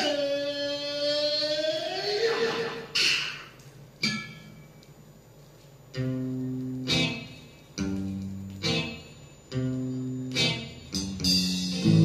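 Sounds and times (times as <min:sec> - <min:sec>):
film song from loudspeakers: 0:00.0 - 0:12.0.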